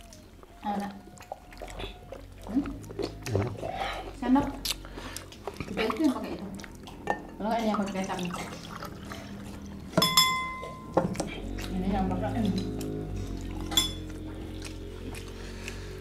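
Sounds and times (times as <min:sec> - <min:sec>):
dishes and cutlery clicking: 0:10.0 - 0:11.2, 0:13.7 - 0:14.0.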